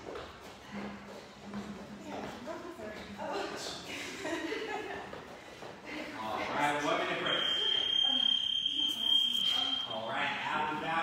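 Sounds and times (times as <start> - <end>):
high-pitched electronic beep: 7.2 - 10.0.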